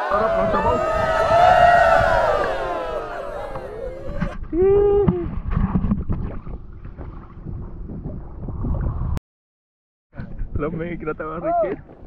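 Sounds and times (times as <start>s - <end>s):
people whooping and calling out: 0.0s - 4.9s
wind rumbling on microphone: 0.0s - 9.2s, 10.2s - 12.0s
water sloshing and splashing: 5.4s - 8.9s.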